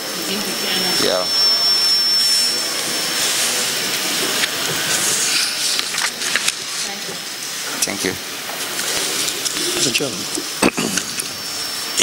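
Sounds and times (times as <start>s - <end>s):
thin high whine: 0.0s - 12.0s.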